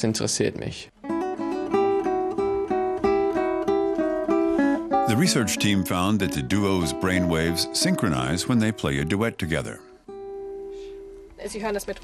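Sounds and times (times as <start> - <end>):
fingerstyle nylon-string guitar: 1.0 - 11.4
man speaking: 5.0 - 9.9.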